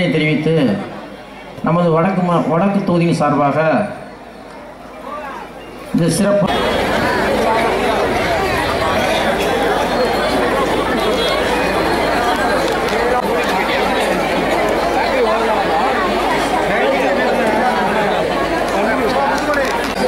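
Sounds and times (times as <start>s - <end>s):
crowd chattering: 0.0s - 20.0s.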